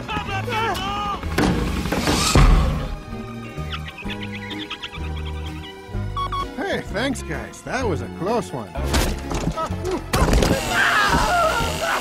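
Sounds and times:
music: 0.0s - 12.0s
voice crying out: 10.6s - 12.0s.

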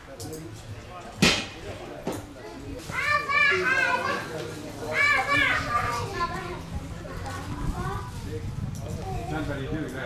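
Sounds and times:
children calling out: 2.9s - 6.6s.

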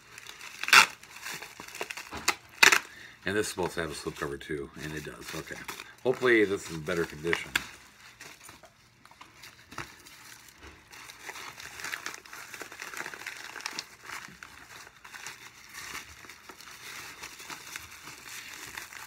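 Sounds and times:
packaging crinkling and rustling: 0.0s - 19.0s.

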